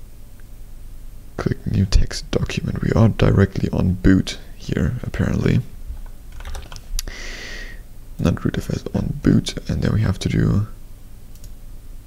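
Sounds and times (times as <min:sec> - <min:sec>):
computer keys and mouse clicks: 0:06.3 - 0:06.9, 0:11.3 - 0:11.6.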